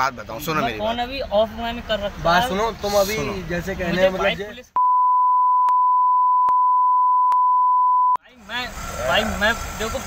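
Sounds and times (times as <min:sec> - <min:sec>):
high-pitched censor bleep: 0:04.8 - 0:08.2.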